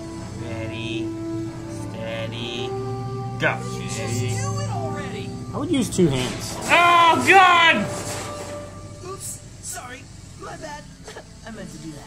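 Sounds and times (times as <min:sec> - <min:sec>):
men murmuring: 0:00.3 - 0:08.8
man saying okay: 0:00.4 - 0:01.1, 0:03.4 - 0:07.8
loud exclamation: 0:05.7 - 0:08.0.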